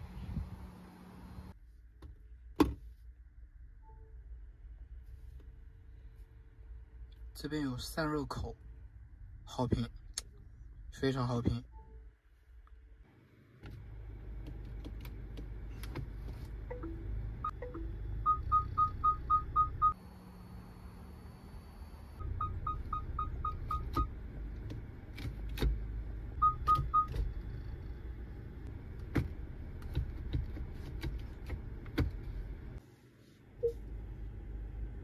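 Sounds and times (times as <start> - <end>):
low car rumble: 12.7 - 32.8, 33.5 - 35.0
car chime short high beeps: 16.7 - 20.0.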